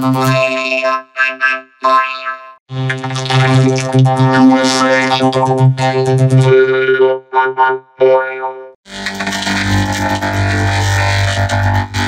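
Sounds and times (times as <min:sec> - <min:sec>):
synthesized vocoder drone: 0:00.0 - 0:12.0.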